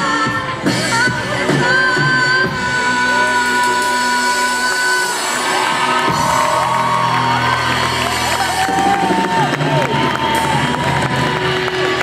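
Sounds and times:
live rock band playing: 0:00.0 - 0:12.0
audience cheering and whooping: 0:04.9 - 0:12.0.

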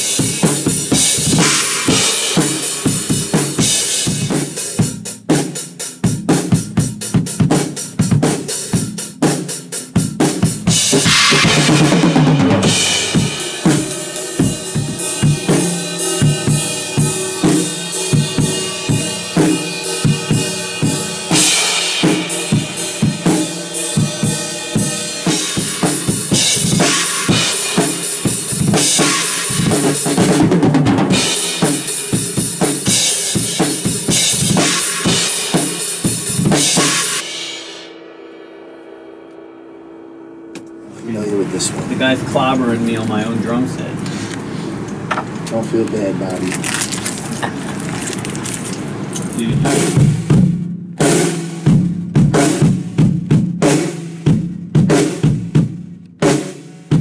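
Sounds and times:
drum kit rock beat: 0:00.0 - 0:44.0, 0:49.2 - 0:57.0
crash cymbal: 0:10.8 - 0:29.8, 0:33.0 - 0:40.9.

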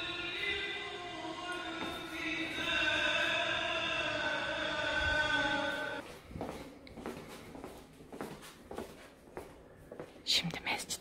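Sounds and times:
person whispering: 0:10.2 - 0:11.0.

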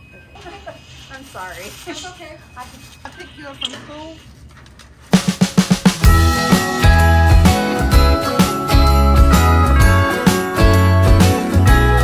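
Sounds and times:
rapid drum fill: 0:05.1 - 0:07.6.

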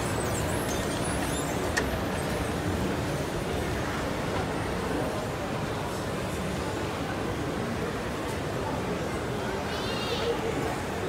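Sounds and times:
shopping mall background noise: 0:00.0 - 0:11.0.

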